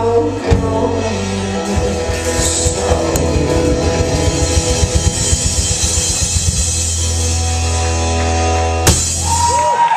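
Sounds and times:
electric and acoustic guitar chords: 0.0s - 9.6s
rapid drum hits: 1.7s - 7.8s, 8.8s - 9.6s.

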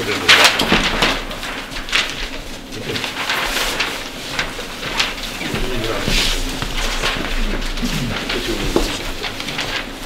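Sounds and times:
low room hum: 0.0s - 10.0s
paper sheets rustling: 0.0s - 10.0s.

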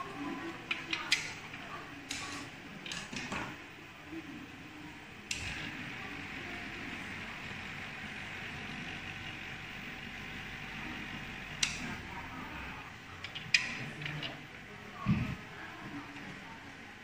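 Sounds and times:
vortex mixer running: 5.1s - 16.9s.

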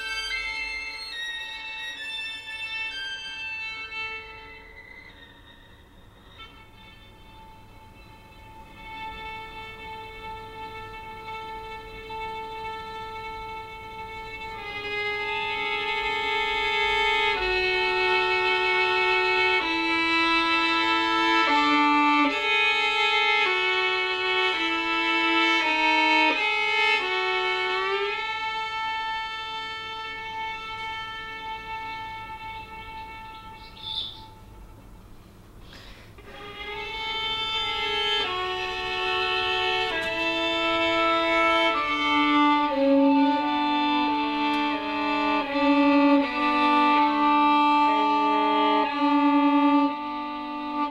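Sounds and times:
solo violin double stops: 0.0s - 50.9s
short high chirp: 33.6s - 34.4s.

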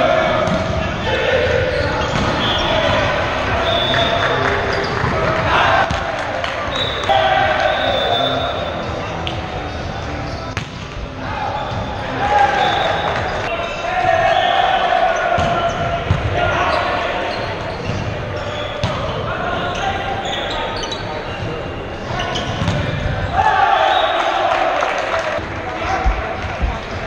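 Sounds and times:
players shouting in gymnasium: 0.0s - 27.0s.

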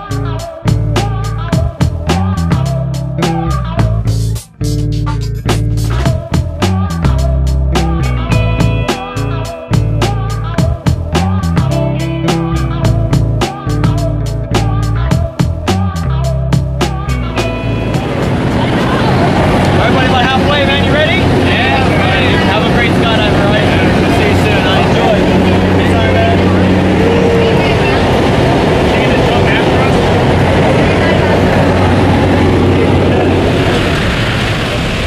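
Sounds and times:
propeller plane engine drone: 5.4s - 35.0s.

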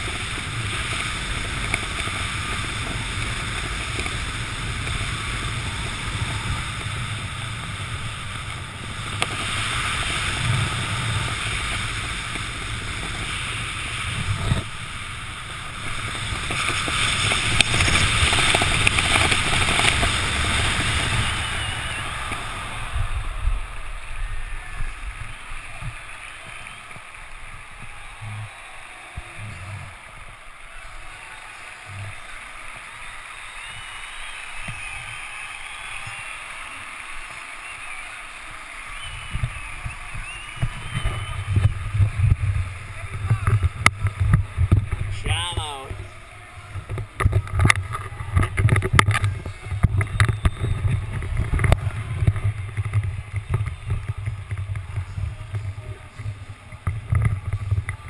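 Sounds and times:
wind rushing over microphone: 0.0s - 31.2s, 38.9s - 58.0s.

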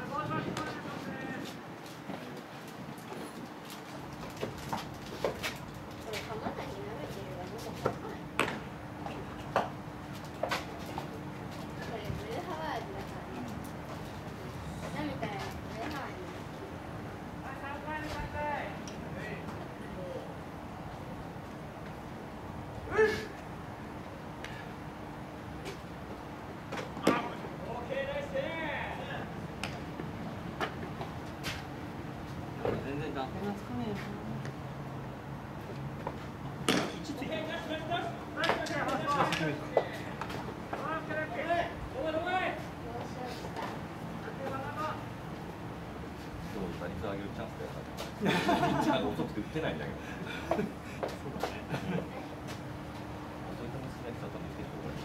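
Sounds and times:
faint steady hum: 0.0s - 55.0s
open-air background noise: 0.0s - 55.0s
person calling out: 22.9s - 23.4s.

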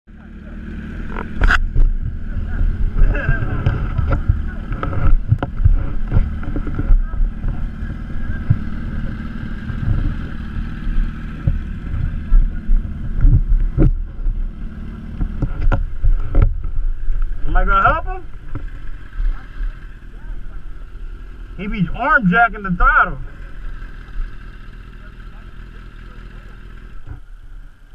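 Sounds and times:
motorcycle engine running: 0.1s - 27.9s
wind rumble on microphone: 1.1s - 19.7s.

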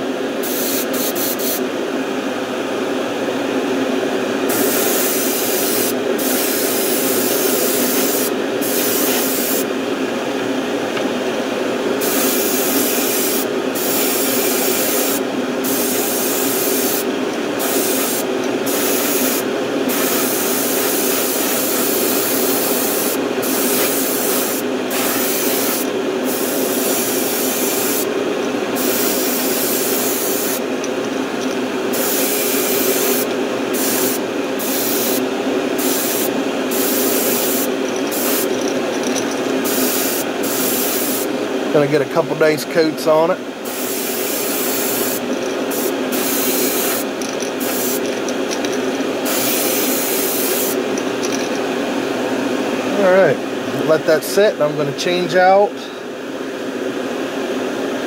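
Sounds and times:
steady hum: 0.0s - 58.0s
airbrush spraying paint: 0.4s - 1.6s, 4.5s - 9.7s, 12.0s - 41.3s, 43.6s - 51.7s.

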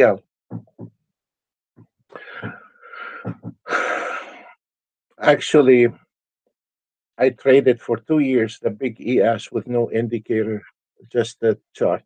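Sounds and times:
man coughing and breathing: 2.2s - 4.2s.

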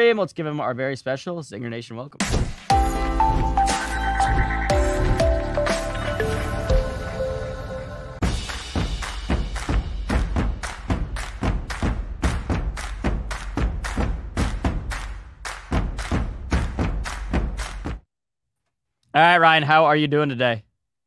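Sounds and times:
intro music with heavy drums: 2.2s - 18.0s.

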